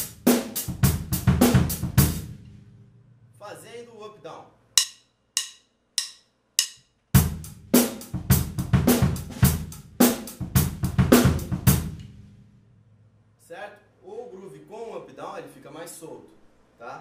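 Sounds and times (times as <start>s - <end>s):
drum-kit groove: 0.0s - 2.5s, 4.8s - 12.2s.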